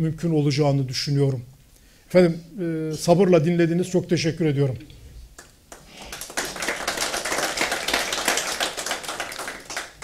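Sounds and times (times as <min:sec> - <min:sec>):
audience applauding: 0:05.7 - 0:10.0.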